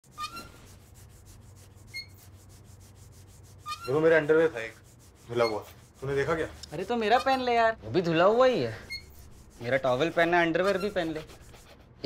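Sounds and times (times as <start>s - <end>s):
brush rubbing a shoe: 0.0s - 7.6s, 8.2s - 12.0s.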